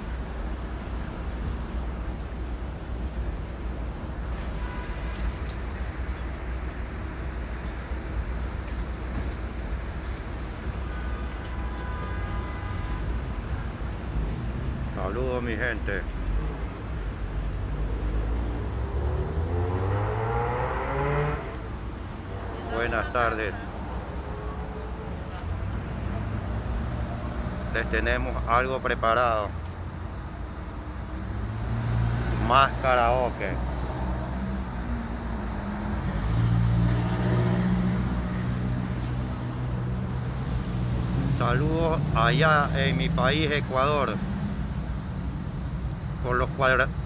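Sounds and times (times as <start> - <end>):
low traffic rumble: 0.0 - 47.0
vehicle engine accelerating: 17.8 - 21.6.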